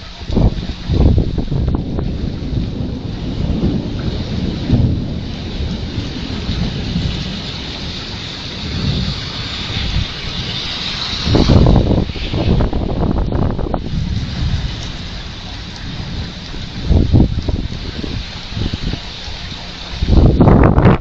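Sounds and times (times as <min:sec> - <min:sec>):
heavy rain: 0:00.0 - 0:21.0
thunder rumbling: 0:00.0 - 0:21.0.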